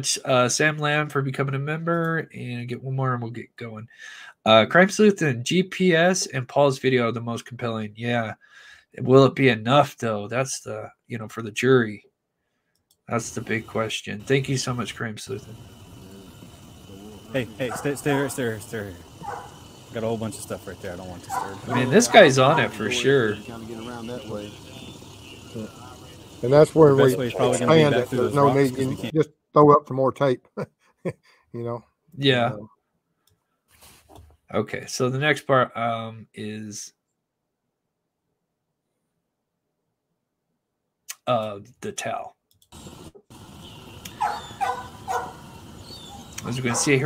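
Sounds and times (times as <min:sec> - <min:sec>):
steady low hum: 0:13.1 - 0:29.1
dog barking: 0:17.4 - 0:18.4, 0:19.1 - 0:19.7, 0:21.2 - 0:23.5, 0:44.1 - 0:45.5, 0:46.1 - 0:47.0.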